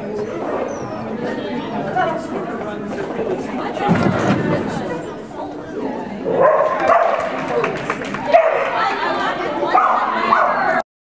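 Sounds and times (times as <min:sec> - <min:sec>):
people chatting: 0:00.0 - 0:10.8
dog barking excitedly: 0:06.4 - 0:07.4, 0:08.3 - 0:08.8, 0:09.8 - 0:10.8.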